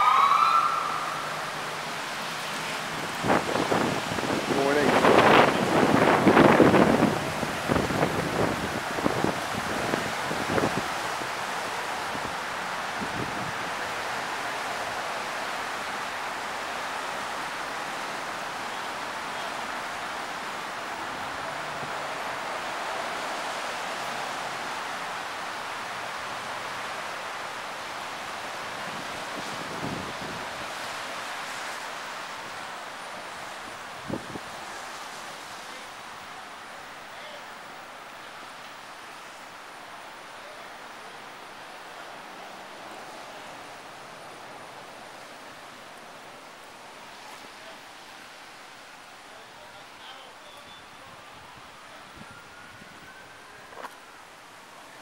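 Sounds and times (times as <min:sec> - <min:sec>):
wind rushing through trees: 0:00.0 - 0:55.0
wind buffeting microphone: 0:02.9 - 0:11.4.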